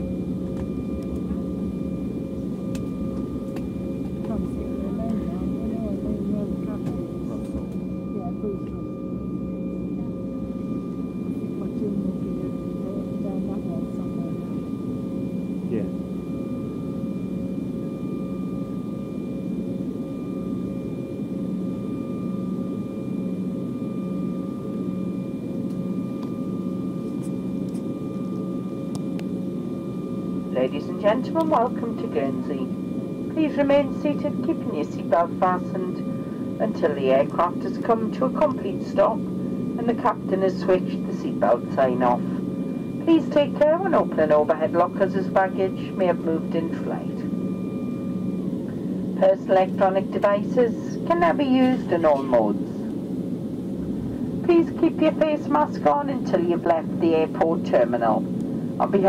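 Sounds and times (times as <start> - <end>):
constant low hum: 0.0 - 59.0
faint engine whines: 0.0 - 59.0.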